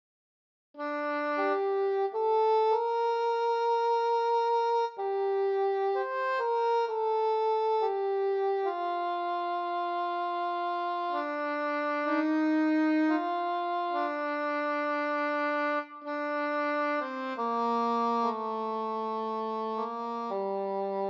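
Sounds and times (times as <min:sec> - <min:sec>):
slow solo instrumental melody: 0:00.8 - 0:21.0.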